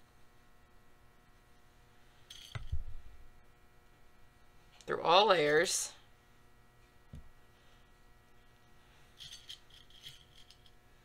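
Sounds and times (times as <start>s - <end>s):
pins clinking in ceramic dish: 9.2s - 10.8s.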